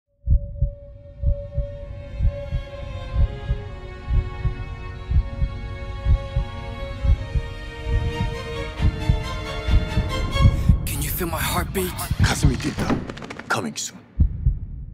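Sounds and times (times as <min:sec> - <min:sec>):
heartbeat double thump: 0:00.2 - 0:10.9, 0:14.1 - 0:14.9
sustained musical drone: 0:00.6 - 0:11.2.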